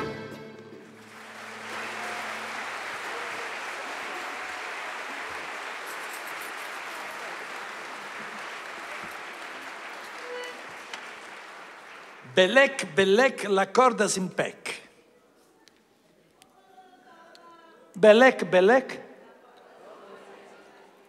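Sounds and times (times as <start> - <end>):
audience applauding: 0.9 - 12.9.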